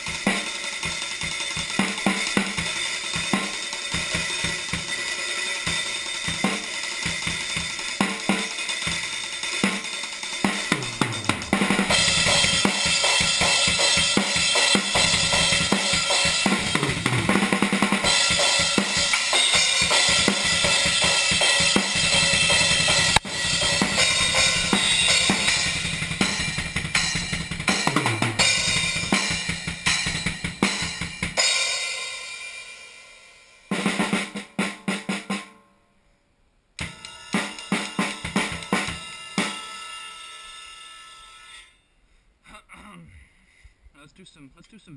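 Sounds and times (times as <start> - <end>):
tom drum hits: 10.5 - 19.2
fast kick drum runs: 10.5 - 31.4
ringing cymbal hits: 36.8 - 41.9.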